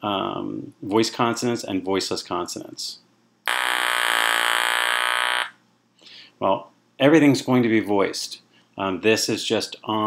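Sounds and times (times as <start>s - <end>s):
electrolarynx buzzing: 3.4s - 5.6s.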